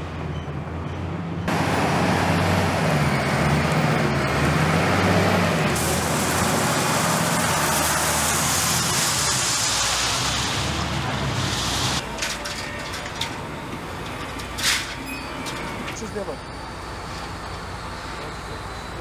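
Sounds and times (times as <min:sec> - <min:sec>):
diesel engine running: 0:01.5 - 0:19.0.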